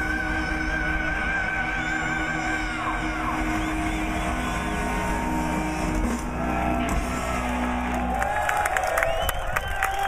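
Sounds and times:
heavy metal band playing live: 0:00.0 - 0:08.4.

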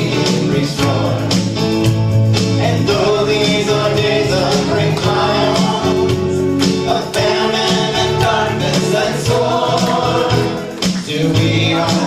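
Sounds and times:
group singing worship song: 0:00.0 - 0:12.0
low bass notes: 0:00.0 - 0:12.0
percussion hits: 0:00.0 - 0:12.0.

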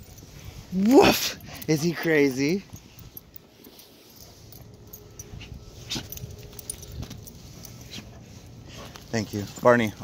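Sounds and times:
metal leash clips jingling: 0:00.0 - 0:10.0
rustling: 0:00.0 - 0:10.0.

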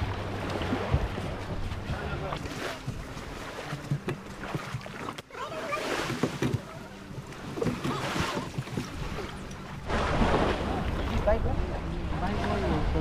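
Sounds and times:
small waves washing: 0:00.0 - 0:13.0.

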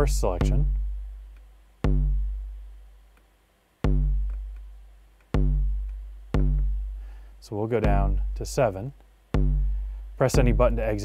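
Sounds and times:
deep electronic kick drum: 0:00.0 - 0:02.8, 0:03.8 - 0:11.0.

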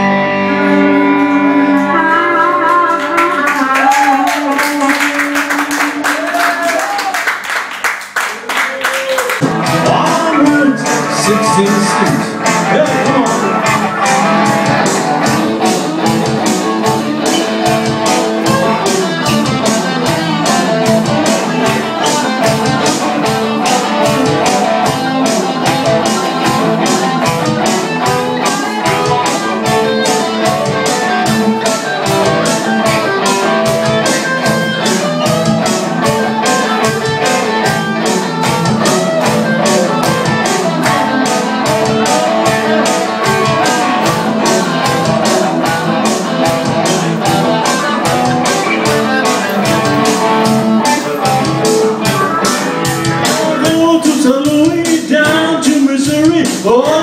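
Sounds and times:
blues-rock electric guitars: 0:00.0 - 0:06.2, 0:09.4 - 0:57.0
steady drum beat: 0:09.4 - 0:57.0.

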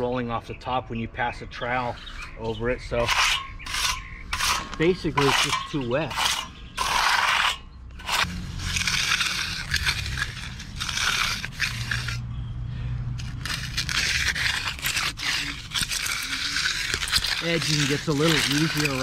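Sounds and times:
hand edger scraping concrete: 0:01.6 - 0:12.2, 0:13.2 - 0:19.0.

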